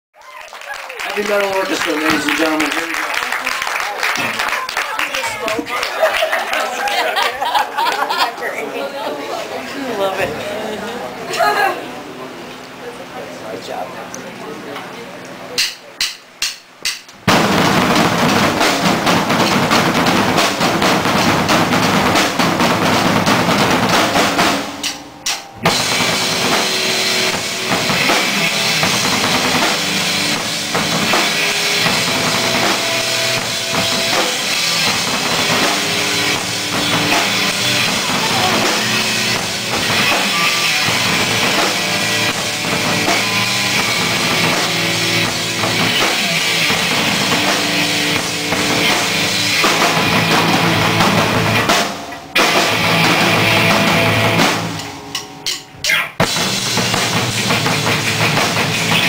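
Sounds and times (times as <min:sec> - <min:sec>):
fast double bass drums: 0:17.2 - 0:54.8, 0:56.2 - 0:59.0
electric guitars: 0:17.2 - 0:59.0.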